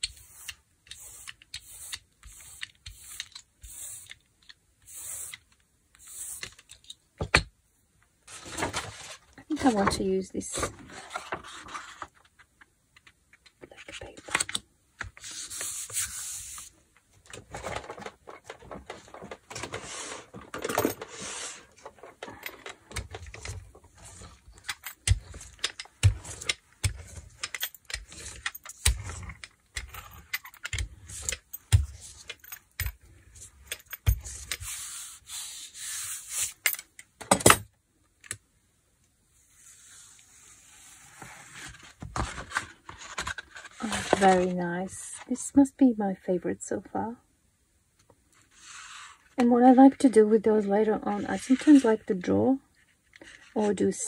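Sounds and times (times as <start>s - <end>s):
paper rustling and rubbing: 10.8s - 12.3s, 15.2s - 16.8s, 17.5s - 22.4s, 34.2s - 36.6s, 39.4s - 44.6s, 48.5s - 49.3s.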